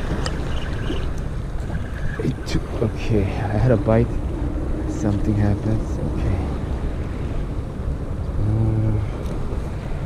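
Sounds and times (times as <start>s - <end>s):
choppy water lapping: 0.0s - 10.0s
wind on microphone: 0.0s - 10.0s.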